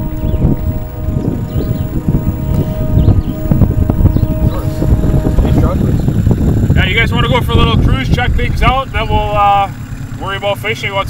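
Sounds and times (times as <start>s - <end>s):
steady hum: 0.0s - 10.4s
wind buffeting microphone: 0.0s - 11.0s.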